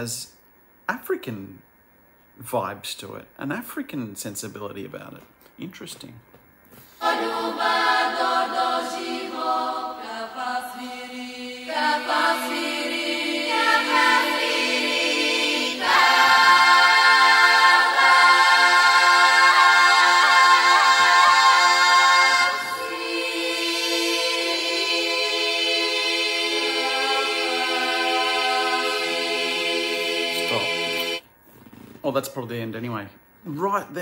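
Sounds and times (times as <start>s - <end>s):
women's choir singing a cappella: 7.0s - 31.2s.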